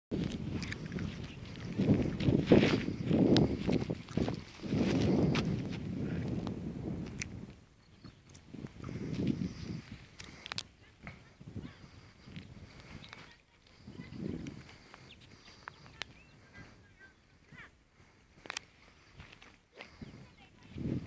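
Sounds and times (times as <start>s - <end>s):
wind buffeting microphone: 0.1s - 21.0s.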